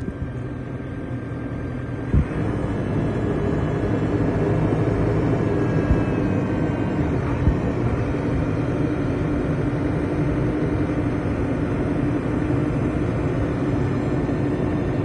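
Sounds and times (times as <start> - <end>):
diesel engine running: 0.0 - 15.0.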